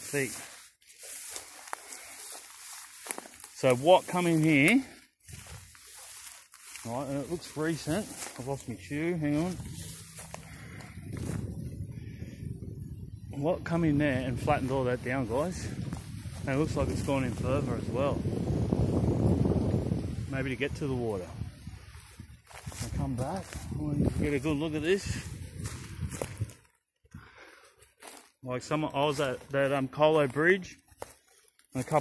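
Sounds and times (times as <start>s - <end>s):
grass rustling against legs: 0.0s - 11.9s, 13.4s - 26.8s, 27.4s - 32.0s
footsteps through wet grass: 0.0s - 32.0s.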